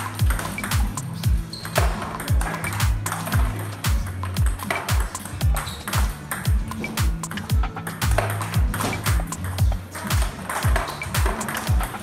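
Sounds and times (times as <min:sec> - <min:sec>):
music with deep bass kick: 0:00.0 - 0:12.0
table tennis ball clicks: 0:00.0 - 0:12.0.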